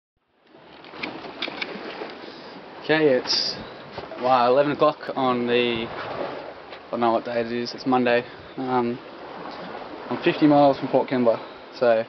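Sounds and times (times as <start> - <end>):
wind and sea rushing: 0.3 - 12.0.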